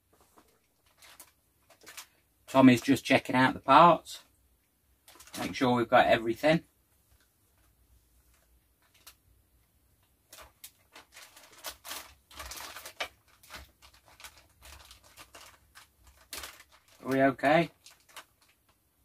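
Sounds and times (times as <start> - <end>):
plastic bags crinkling: 0.3 - 2.2, 5.0 - 5.6, 8.8 - 9.2, 10.2 - 18.8.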